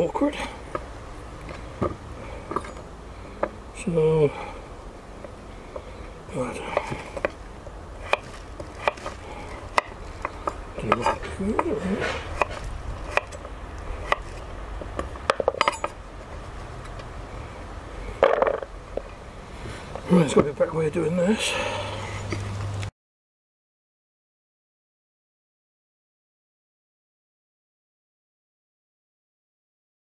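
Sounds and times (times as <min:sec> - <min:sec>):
knife chopping on wooden board: 0:08.0 - 0:13.4, 0:14.0 - 0:15.9.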